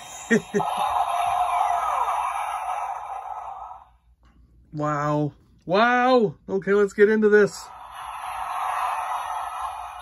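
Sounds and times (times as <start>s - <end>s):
tinny toy sound effect: 7.6s - 10.0s.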